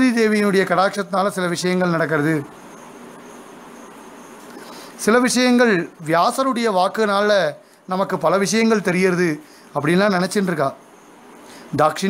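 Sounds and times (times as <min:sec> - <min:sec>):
background hiss: 0:00.0 - 0:12.0
thin high whine: 0:00.0 - 0:12.0.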